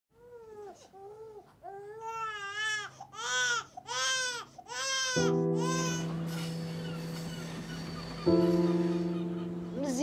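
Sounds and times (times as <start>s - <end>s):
newborn baby crying: 0.2s - 9.5s.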